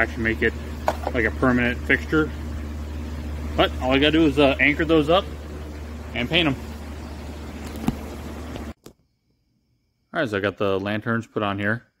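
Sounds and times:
low hum: 0.0 - 8.8.

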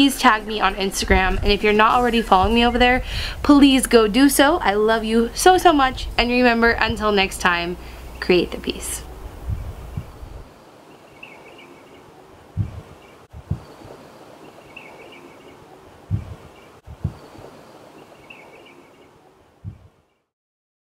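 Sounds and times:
soft low thumps: 0.0 - 8.2, 9.0 - 10.5, 12.5 - 14.0, 16.1 - 17.4, 19.6 - 19.9
steady hiss: 0.0 - 19.1.

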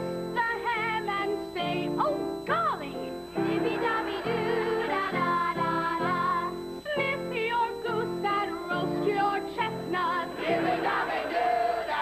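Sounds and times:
young female voices singing carol: 0.4 - 12.0.

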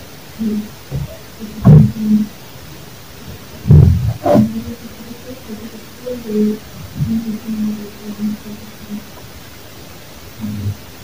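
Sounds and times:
distorted phone voice recording: 0.4 - 2.4, 3.6 - 9.2, 10.4 - 10.9.

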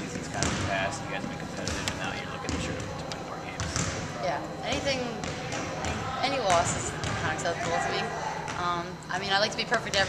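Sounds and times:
voices talking: 0.0 - 10.0
basketballs bouncing on wooden floor: 0.3 - 0.7, 1.6 - 2.9, 3.6 - 4.0, 4.7 - 8.8.

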